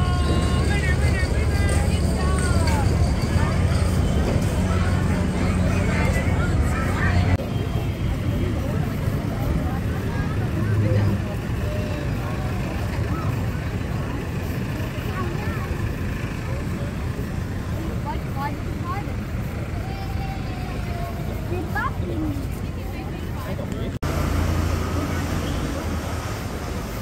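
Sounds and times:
faint distant voices: 0.0 - 27.0
low street rumble: 0.0 - 27.0.

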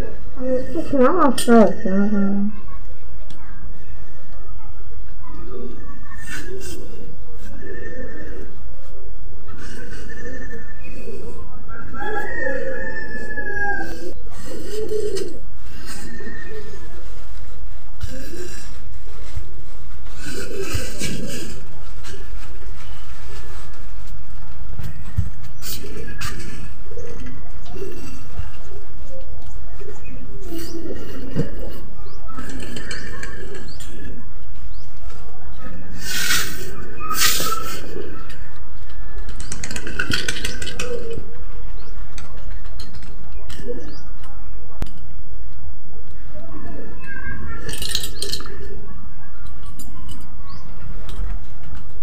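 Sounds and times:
woman mumbling through a gag: 0.4 - 2.6.

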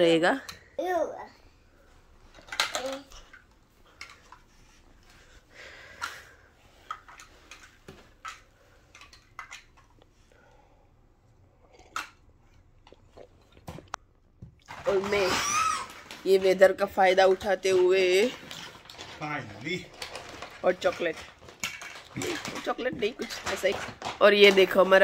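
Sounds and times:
plastic building blocks clattering: 2.3 - 4.8, 14.6 - 25.0.

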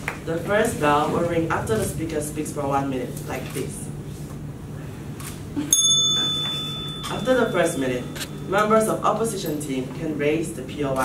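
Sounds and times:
bell ringing: 5.7 - 9.8.

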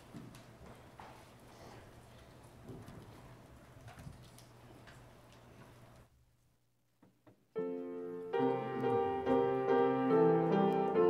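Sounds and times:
people shuffling and rustling: 0.0 - 6.1, 7.7 - 11.0
low room hum: 0.0 - 11.0.

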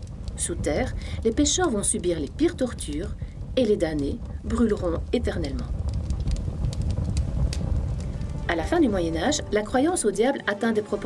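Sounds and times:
low roar of flames: 0.0 - 10.3
fire crackling: 0.0 - 11.0.

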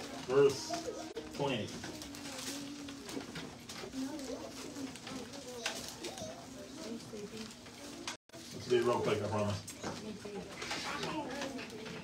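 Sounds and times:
low voices murmuring: 0.0 - 12.0.

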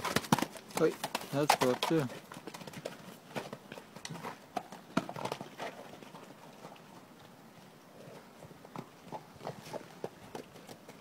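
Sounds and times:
horse hooves on muddy ground: 0.0 - 11.0.

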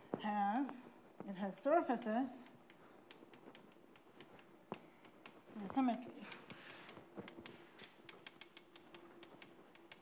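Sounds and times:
faint steady hum: 0.0 - 10.0
chalk tapping on blackboard: 0.6 - 10.0.

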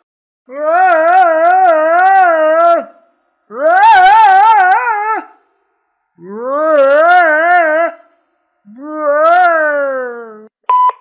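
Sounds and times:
cartoon voice ghostly wailing: 3.5 - 5.3, 6.2 - 8.0, 8.7 - 10.5.

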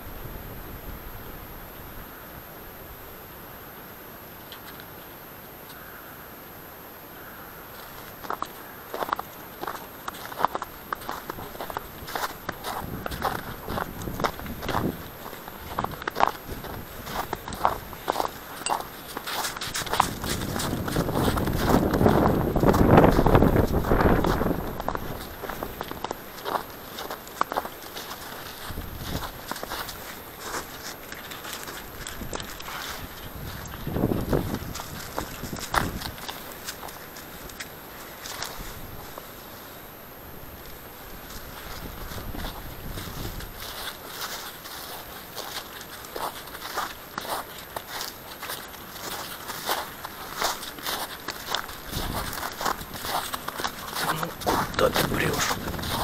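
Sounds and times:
footsteps crunching on snow: 7.2 - 56.0.

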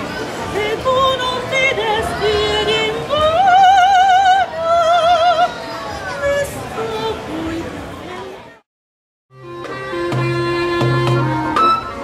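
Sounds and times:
woman singing operatically: 0.5 - 5.6, 6.2 - 7.7, 10.0 - 11.8.

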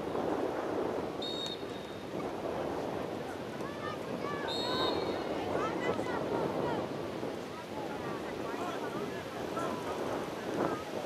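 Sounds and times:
wind on microphone: 0.0 - 11.0
short high-pitched whistle tone: 1.2 - 2.0.

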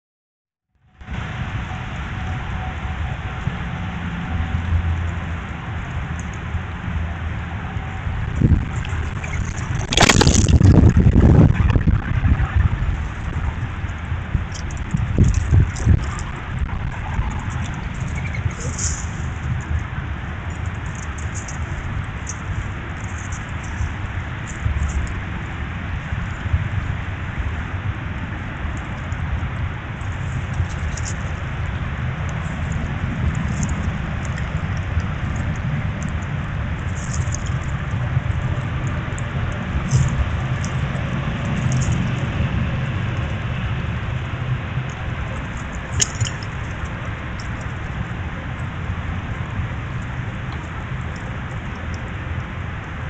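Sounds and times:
steady outdoor hiss: 0.8 - 53.0
loud low rumbling burst: 7.6 - 20.2.

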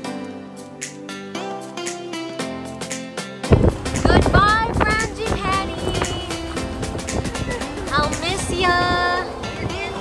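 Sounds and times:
song with beat and vocals: 0.0 - 10.0.

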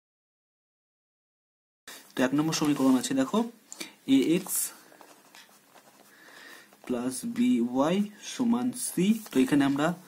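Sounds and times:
person speaking: 1.9 - 10.0.

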